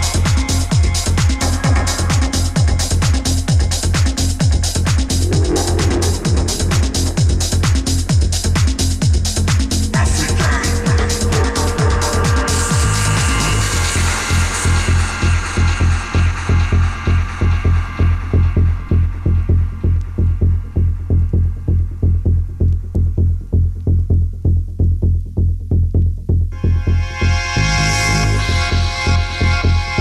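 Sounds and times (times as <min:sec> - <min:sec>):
throbbing bass line: 0:00.0 - 0:30.0
bright synth chords: 0:09.8 - 0:15.8.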